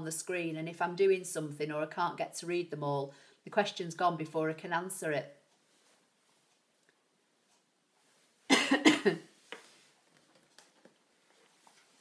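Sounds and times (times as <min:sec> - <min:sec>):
person coughing: 0:08.5 - 0:09.3.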